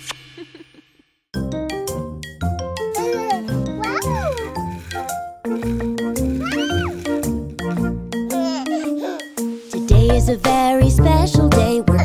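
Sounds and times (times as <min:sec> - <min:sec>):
cheerful children's music: 0:01.4 - 0:12.0.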